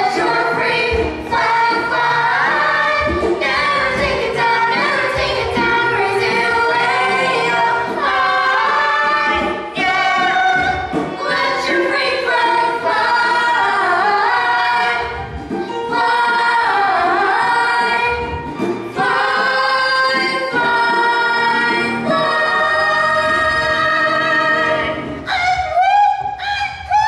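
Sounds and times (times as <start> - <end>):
ensemble singing in chorus: 0.0 - 25.3.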